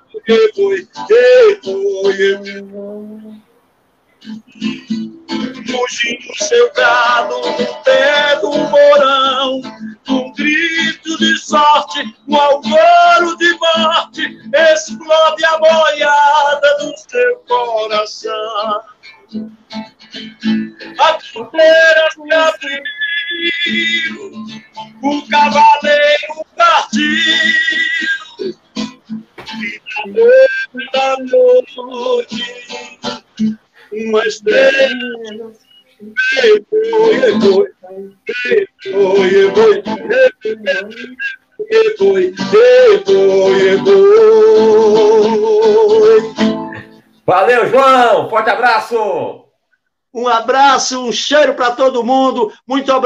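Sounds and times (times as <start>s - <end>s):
man singing: 0.0s - 3.4s, 4.6s - 19.3s, 20.4s - 48.3s, 50.2s - 53.0s
acoustic guitar strumming: 0.0s - 49.0s.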